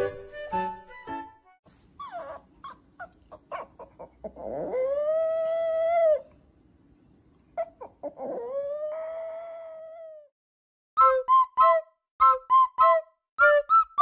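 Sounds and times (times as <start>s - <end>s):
dog yipping: 2.0s - 6.2s, 7.6s - 9.6s
dog howling: 8.1s - 10.3s.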